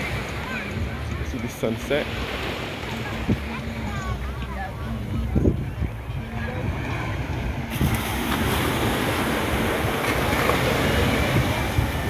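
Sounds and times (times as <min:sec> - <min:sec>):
surf washing on beach: 0:00.0 - 0:12.0
wind buffeting microphone: 0:02.9 - 0:12.0.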